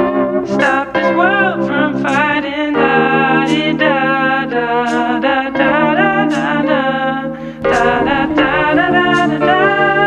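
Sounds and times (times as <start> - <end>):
song with sung vocals: 0.5 - 10.0
fuller bass: 7.6 - 9.5.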